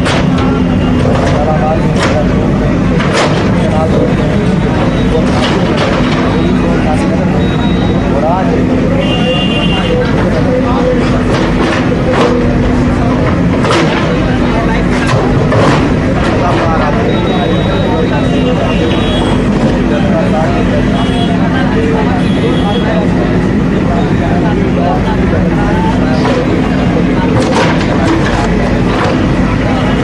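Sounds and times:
backhoe engine running: 0.0 - 30.0
crowd voices: 0.0 - 30.0.

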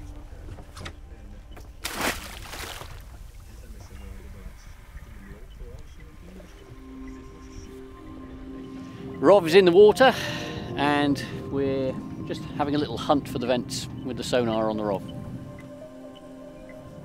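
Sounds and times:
boat noise: 0.0 - 17.0
low rumble of wind: 0.0 - 17.0
soft background music: 0.0 - 17.0
object splashing into water: 1.8 - 3.0.

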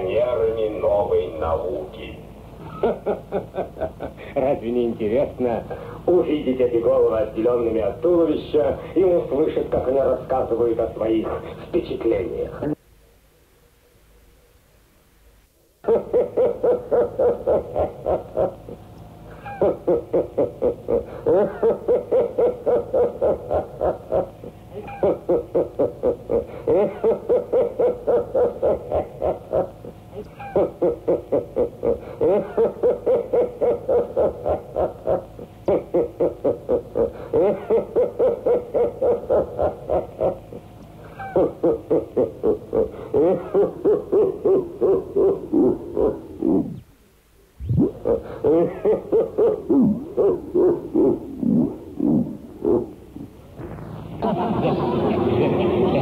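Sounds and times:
rapid pulsing pitched tone: 45.5 - 47.0, 47.6 - 48.8, 49.6 - 55.8.

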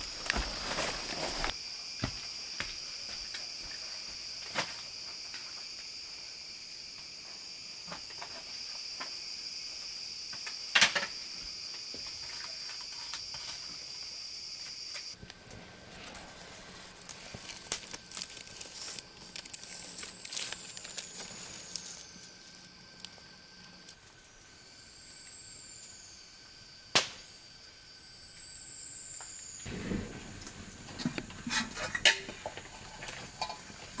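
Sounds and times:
wood fire crackling and popping: 15.1 - 24.3, 29.6 - 34.0
metal pot and firewood clattering: 15.3 - 23.9, 29.7 - 34.0.

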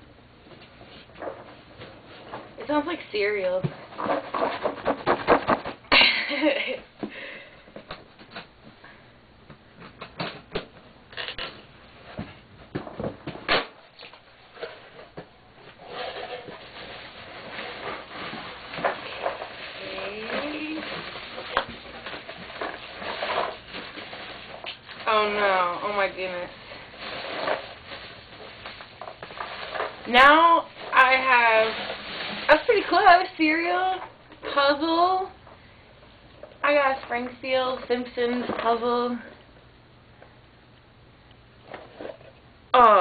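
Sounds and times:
wrapping rustling: 0.6 - 6.8, 14.0 - 35.3
scraping and knocks: 3.6 - 5.9
cardboard ripping: 3.8 - 5.8, 15.8 - 33.0.

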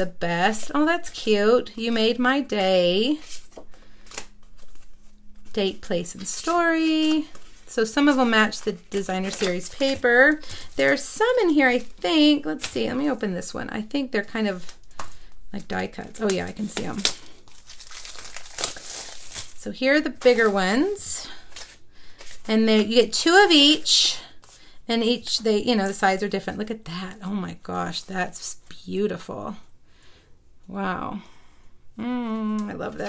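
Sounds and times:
plastic packaging crinkling: 2.4 - 13.2, 14.5 - 23.8
cards shuffled by hand: 2.5 - 13.1, 14.6 - 23.0
sharp plastic crackle: 3.3 - 13.0, 14.6 - 22.9.

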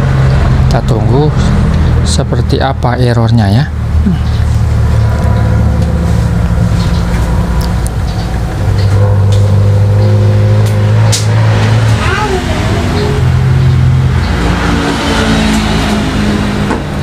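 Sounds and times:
vehicle engine droning: 0.0 - 17.0.

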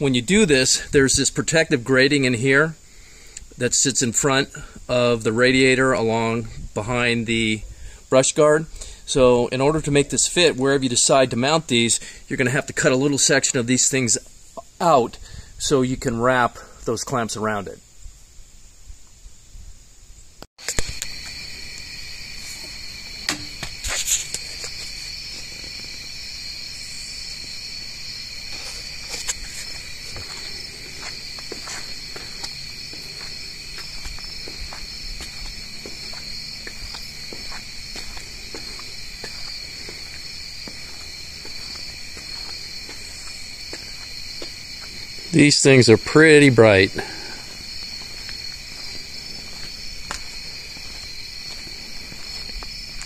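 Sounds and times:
insects trilling: 0.0 - 53.0.

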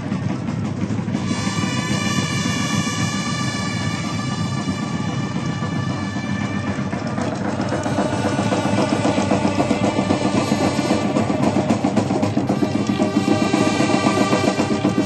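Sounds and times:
drums beating fast rhythm: 0.0 - 15.0
steady held notes: 0.0 - 15.0.

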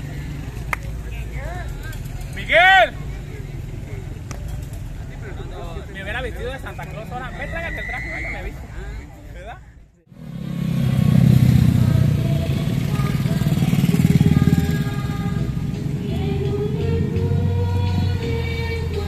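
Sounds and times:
vehicle engine throbbing: 10.1 - 19.0.

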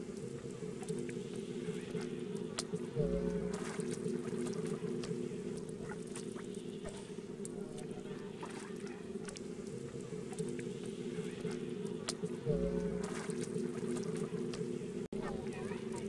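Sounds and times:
water splashing and dripping: 0.0 - 16.0.

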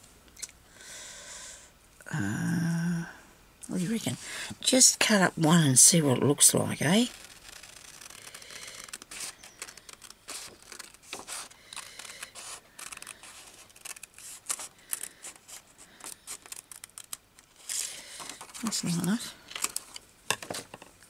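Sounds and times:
paper rustling and crackling: 6.6 - 20.9.

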